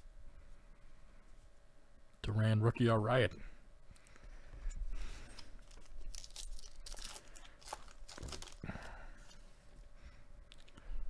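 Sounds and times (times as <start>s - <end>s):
wrapper crinkling: 5.2s - 9.4s
card pack wrapper tearing: 5.6s - 8.8s.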